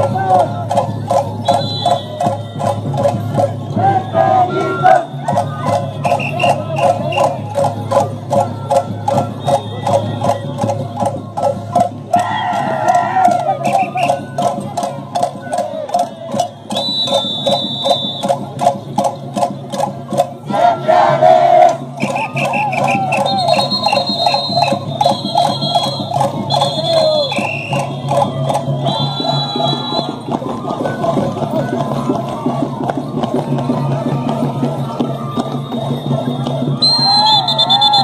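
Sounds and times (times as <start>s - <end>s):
voices singing: 0.0s - 17.2s, 20.1s - 38.0s
steady drum beat: 0.0s - 38.0s.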